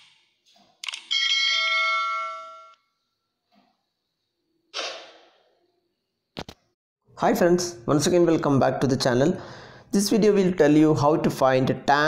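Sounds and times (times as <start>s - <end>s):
bell-like notification chime: 1.2s - 2.8s.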